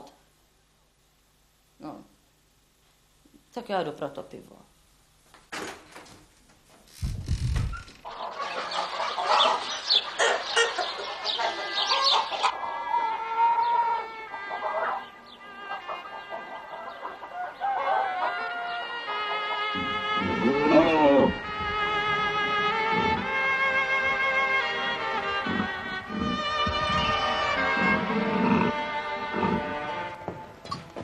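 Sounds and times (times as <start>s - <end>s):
hens clucking: 8.0s - 30.6s
music with long held notes: 18.6s - 31.0s.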